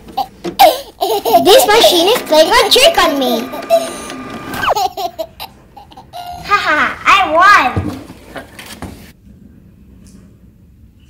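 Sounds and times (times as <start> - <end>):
girl laughing: 4.5 - 6.4.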